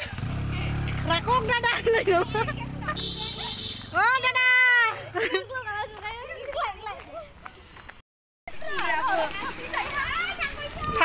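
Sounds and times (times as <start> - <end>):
girls talking and calling out: 0.0 - 7.9, 8.5 - 11.0.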